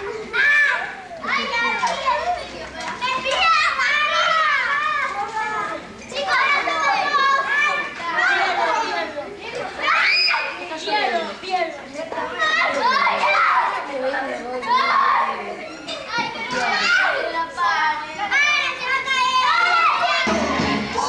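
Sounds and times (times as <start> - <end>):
crowd of children shouting: 0.0 - 11.4, 12.1 - 21.0.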